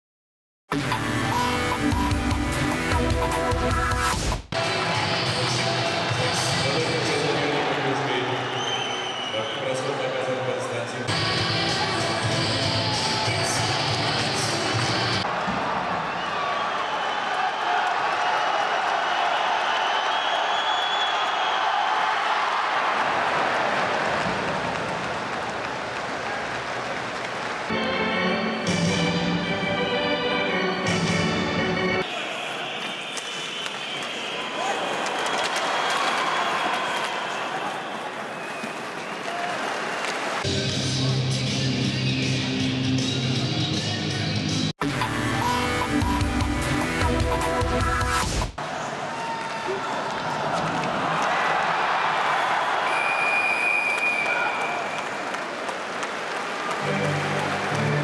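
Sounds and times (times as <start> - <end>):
arena music: 0.7 - 7.4, 27.7 - 32.1, 40.5 - 48.5, 56.7 - 58.0
crowd cheering and applauding: 4.6 - 10.3, 11.2 - 28.6, 32.0 - 40.5, 48.6 - 58.0.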